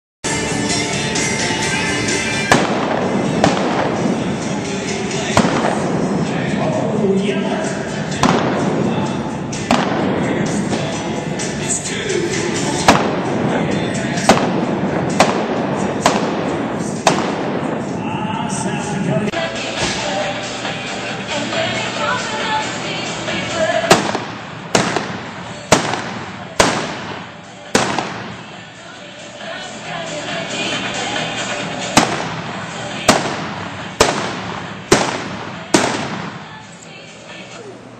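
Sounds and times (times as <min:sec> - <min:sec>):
background music: 0:00.2 - 0:37.9
revolver shots: 0:02.5 - 0:06.3, 0:08.1 - 0:11.0, 0:12.8 - 0:13.5, 0:14.1 - 0:17.9, 0:23.8 - 0:28.6, 0:31.8 - 0:36.6.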